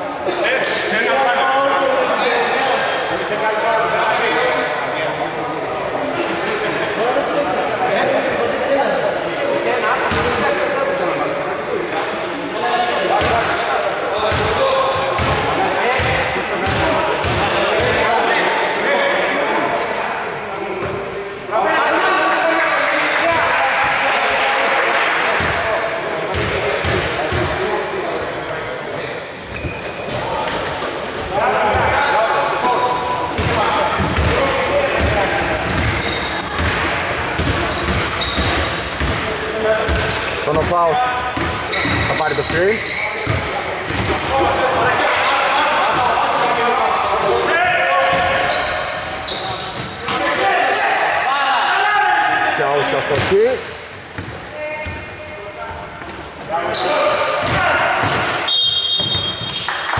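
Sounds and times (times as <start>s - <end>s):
sneakers squeaking: 6.7s - 7.1s, 9.2s - 10.5s, 13.2s - 18.5s, 26.3s - 27.6s, 29.0s - 45.0s, 45.8s - 51.4s, 53.1s - 59.9s
ball bouncing on wooden court: 35.0s - 39.2s, 43.2s - 44.2s, 54.1s - 55.0s.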